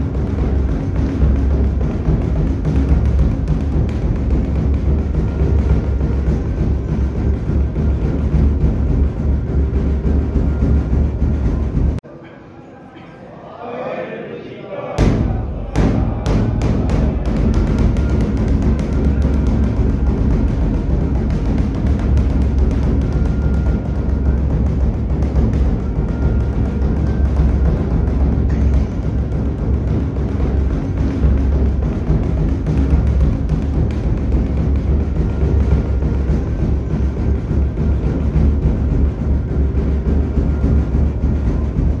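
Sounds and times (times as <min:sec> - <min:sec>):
large kettle drum beaten hard: 0:00.0 - 0:12.0, 0:15.0 - 0:42.0.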